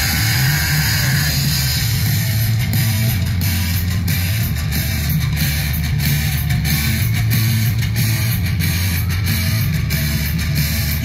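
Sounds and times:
live punk rock band: 0.0s - 11.0s.

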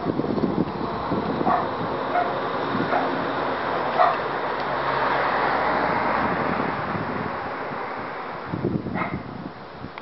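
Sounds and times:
wind on microphone: 0.0s - 4.4s, 5.0s - 10.0s
car driving past: 0.8s - 8.4s.

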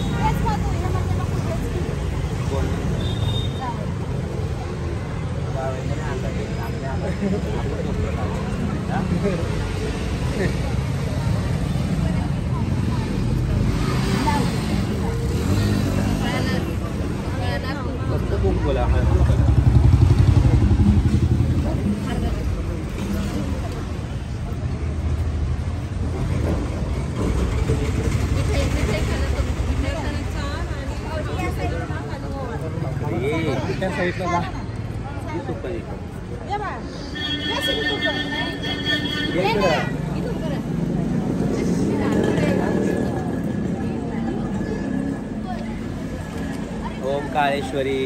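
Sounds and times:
people talking indistinctly: 0.0s - 48.0s.

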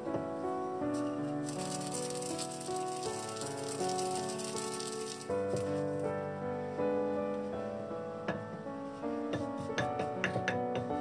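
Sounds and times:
background music: 0.0s - 11.0s
seeds grinding with pestle: 1.0s - 5.8s.

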